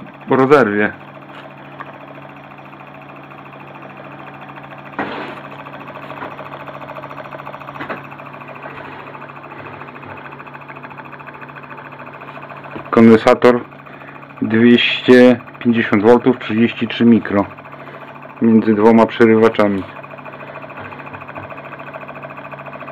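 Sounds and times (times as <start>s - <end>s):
motor buzzing over low hum: 0.0s - 22.9s.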